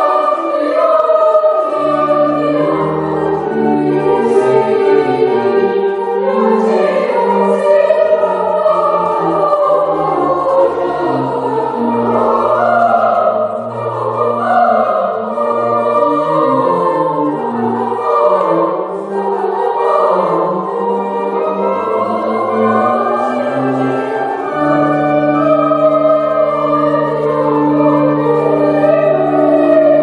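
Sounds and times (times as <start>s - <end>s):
children's choir singing: 0.0s - 30.0s.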